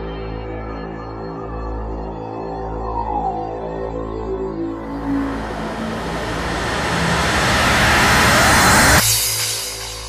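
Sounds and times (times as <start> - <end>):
synth noise riser: 4.7 - 10.0
low bass note: 4.8 - 10.0.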